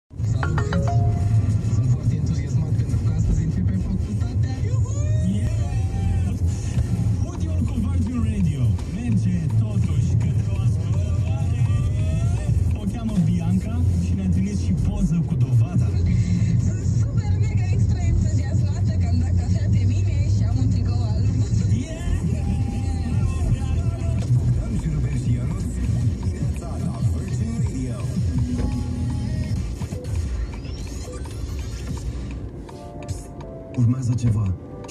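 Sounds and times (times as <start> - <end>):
faint radio playing: 0.1 - 34.9
car engine and tyre rumble: 1.4 - 34.9.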